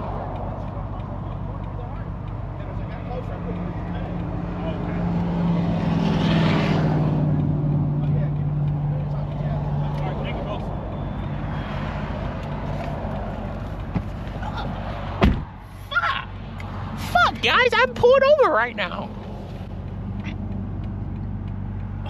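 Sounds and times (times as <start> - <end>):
vehicle passing on road: 0.0 - 22.0.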